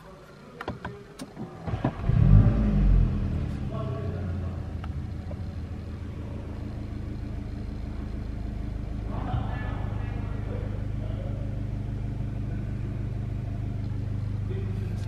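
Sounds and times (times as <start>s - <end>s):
car engine starting and idling: 0.1s - 15.0s.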